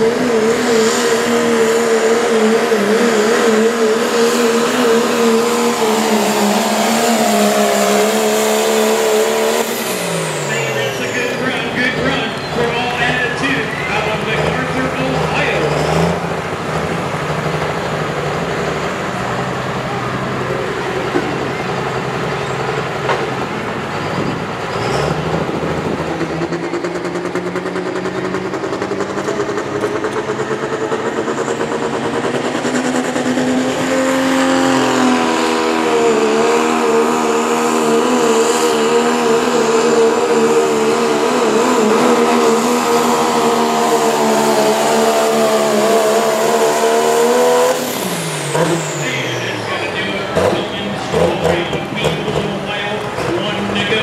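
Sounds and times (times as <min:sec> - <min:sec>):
diesel truck engine revving: 0:00.0 - 0:54.0.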